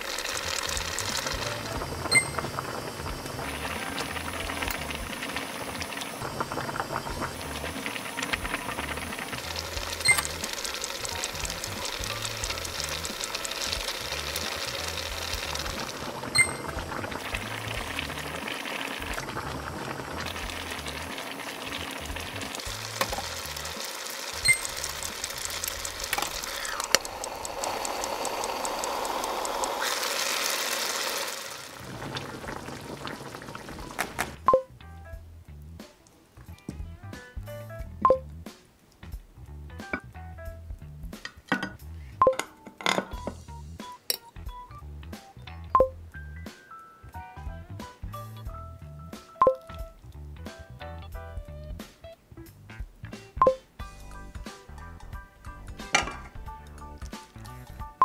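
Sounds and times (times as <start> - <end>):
pot boiling and bubbling: 0.0 - 46.4, 47.4 - 50.7, 52.6 - 58.0
background music: 0.8 - 26.2, 33.7 - 58.0
sharp clicks: 24.4 - 29.8.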